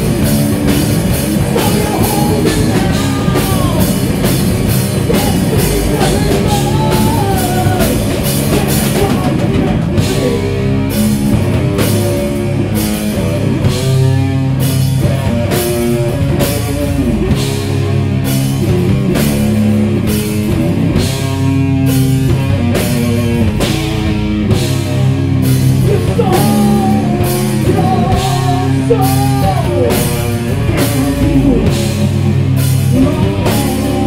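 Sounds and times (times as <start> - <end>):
distorted guitar and bass riffs: 0.0 - 34.0
drum kit: 0.0 - 34.0.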